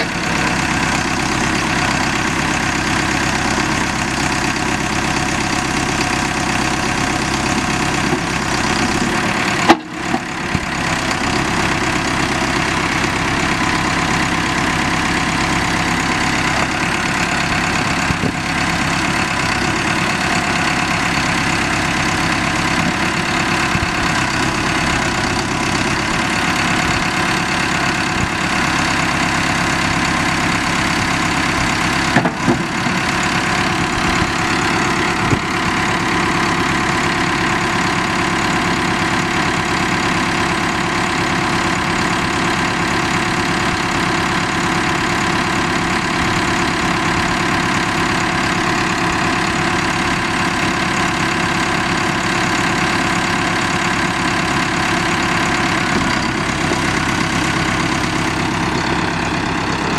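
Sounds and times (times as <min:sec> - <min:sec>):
diesel engine idling: 0:00.0 - 0:59.9.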